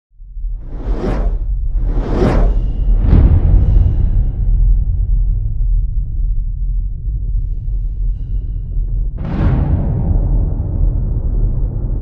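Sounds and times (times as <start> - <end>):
deep rumble: 0.1 - 12.0
whoosh sound effect: 0.6 - 3.2.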